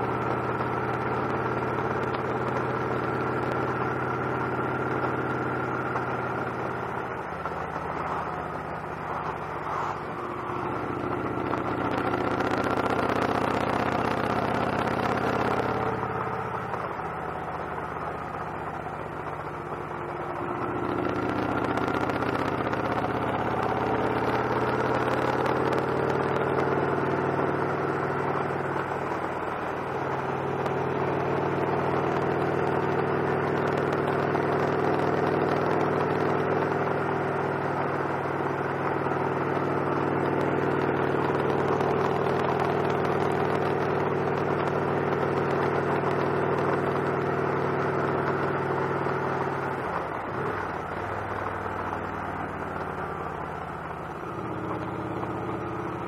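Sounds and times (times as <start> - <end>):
motorcycle engine accelerating: 0.0 - 56.0.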